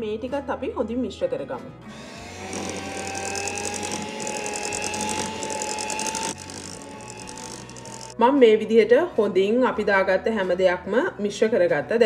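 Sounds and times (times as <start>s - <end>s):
electric hand mixer whine: 1.9s - 8.2s.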